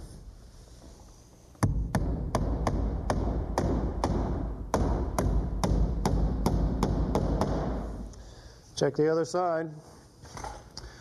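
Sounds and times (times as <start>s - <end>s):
hammer driving nail into wood: 1.6s - 8.0s.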